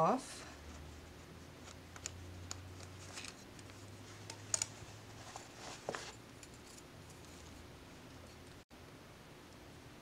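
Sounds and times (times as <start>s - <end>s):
fabric rustling: 2.8s - 8.4s.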